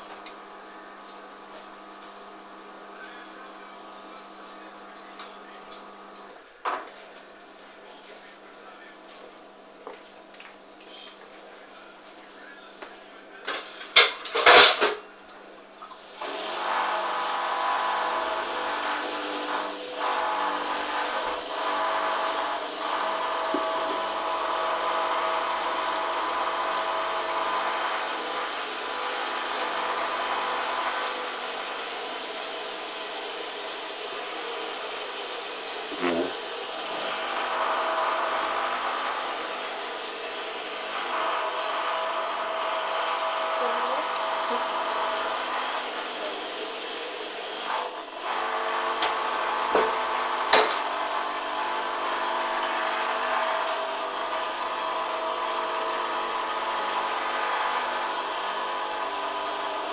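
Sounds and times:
washing machine drum spinning: 0:16.2 - 0:31.8.

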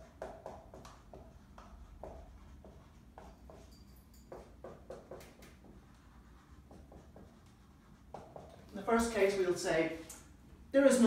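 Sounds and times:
marker writing on whiteboard: 0:00.0 - 0:09.4.

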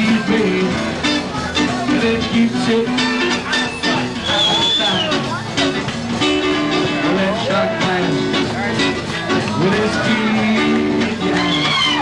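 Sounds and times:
people's voices: 0:00.0 - 0:12.0
rock and roll band playing: 0:00.0 - 0:12.0.

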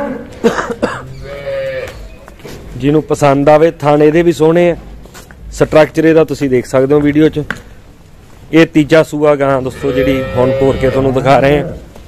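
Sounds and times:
livestock animal call: 0:01.1 - 0:02.3, 0:09.7 - 0:11.8
man speaking: 0:08.6 - 0:11.9.

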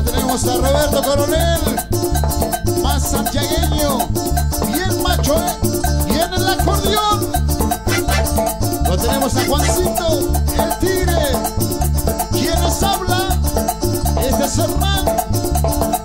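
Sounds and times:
live band playing dance music: 0:07.8 - 0:08.5, 0:09.2 - 0:10.1.

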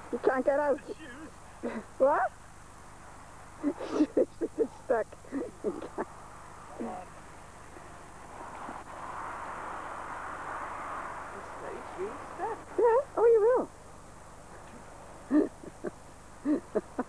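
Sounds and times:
soft steady rushing noise: 0:00.0 - 0:17.0
person laughing loudly: 0:03.6 - 0:04.7, 0:05.3 - 0:06.0, 0:15.3 - 0:17.0.

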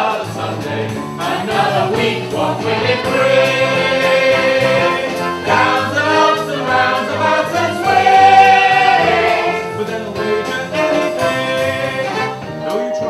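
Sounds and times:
choir singing: 0:00.0 - 0:12.4
instrumental accompaniment: 0:00.0 - 0:13.0.

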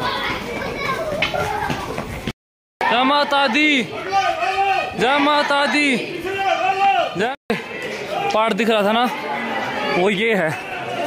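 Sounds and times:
background chatter: 0:02.8 - 0:11.0.

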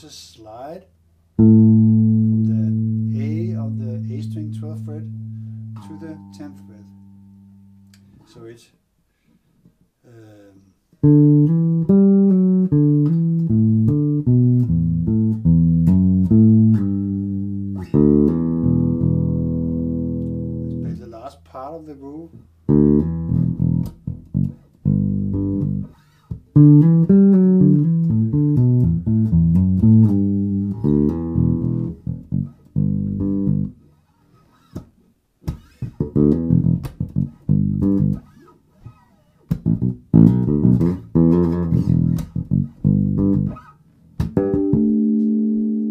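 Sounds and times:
funky electric bass: 0:01.4 - 0:07.2, 0:11.0 - 0:21.2, 0:22.6 - 0:33.8, 0:34.7 - 0:45.9.

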